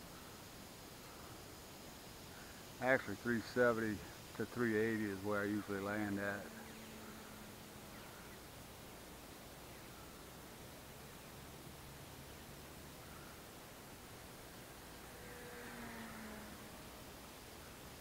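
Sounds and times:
faint outdoor hiss: 0.0 - 18.0.

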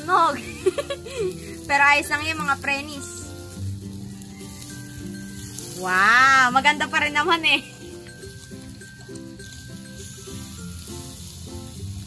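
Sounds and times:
meat sizzling on a grill: 0.0 - 12.0
quiet background music: 0.0 - 12.0.

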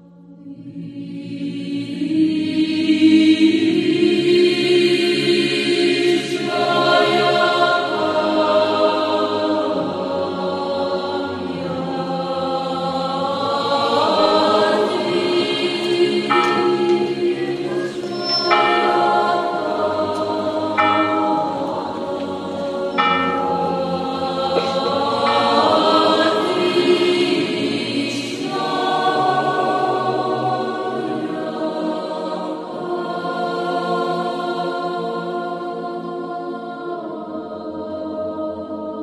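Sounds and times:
choir singing slow chant: 0.0 - 39.0.

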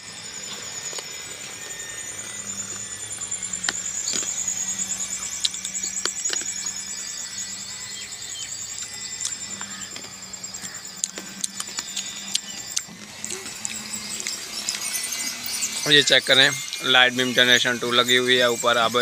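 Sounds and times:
insects trilling: 0.0 - 19.0.

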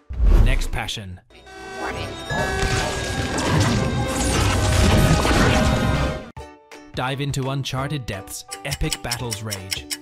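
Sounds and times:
dramatic score music: 1.3 - 6.3
crashing and smashing impacts: 2.4 - 6.3.

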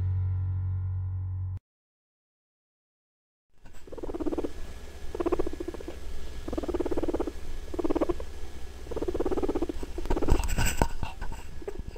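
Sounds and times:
low steady hum: 0.0 - 1.6, 3.6 - 11.9
guinea pig purring: 3.6 - 11.9.

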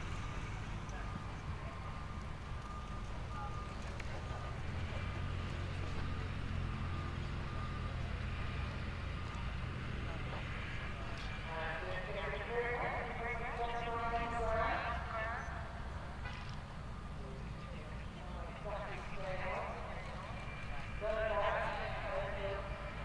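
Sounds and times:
distant voice talking: 11.3 - 15.7, 17.2 - 22.9.

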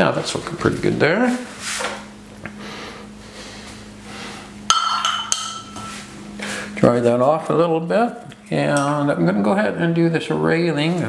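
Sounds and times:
low steady hum: 0.0 - 11.0
hard object clinking on dish: 4.7 - 5.9.

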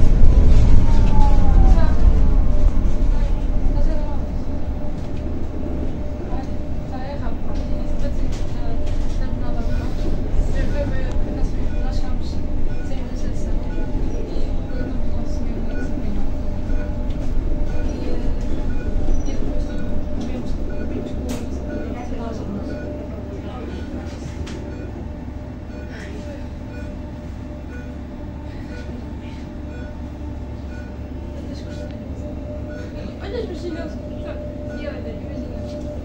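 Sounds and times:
bus cabin hum: 0.0 - 36.0.

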